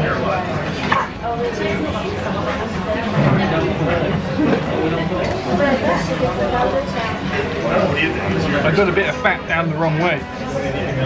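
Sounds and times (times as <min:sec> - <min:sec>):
diners chattering: 0:00.0 - 0:11.0.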